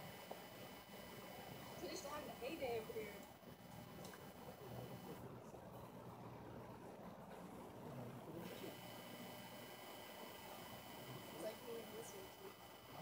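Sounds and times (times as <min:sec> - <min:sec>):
weak steady low hum: 0:00.0 - 0:07.2.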